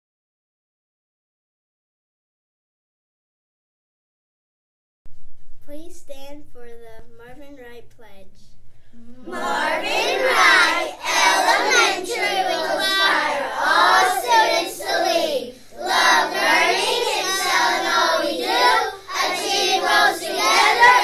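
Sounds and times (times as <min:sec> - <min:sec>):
children chanting in unison: 0:09.2 - 0:21.0.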